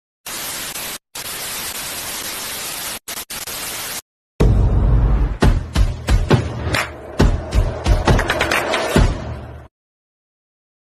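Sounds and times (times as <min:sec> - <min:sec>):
television static hiss: 0:00.3 - 0:04.0.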